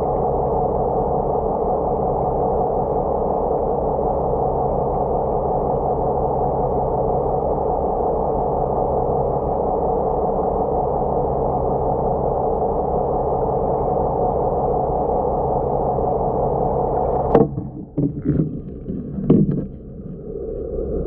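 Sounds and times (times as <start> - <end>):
muffled engine drone underwater: 0.0 - 21.0.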